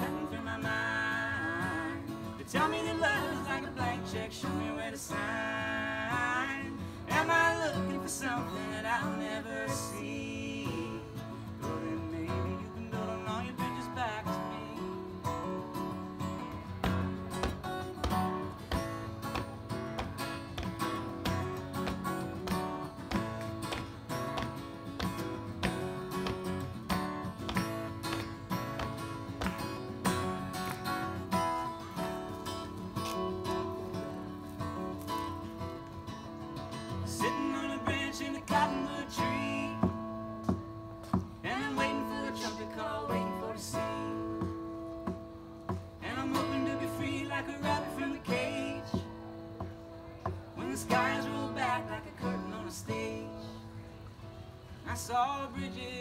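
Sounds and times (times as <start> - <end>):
acoustic guitar strumming: 0.0 - 56.0
person singing: 37.0 - 40.0.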